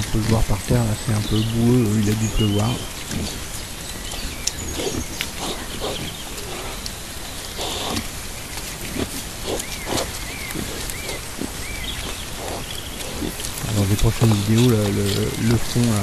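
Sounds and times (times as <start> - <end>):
boars grunting and snuffling: 0.0 - 16.0
steady hiss: 0.0 - 16.0.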